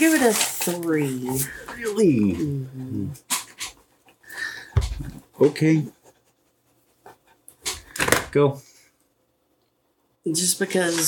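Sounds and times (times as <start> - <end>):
person panting: 4.2 - 5.1.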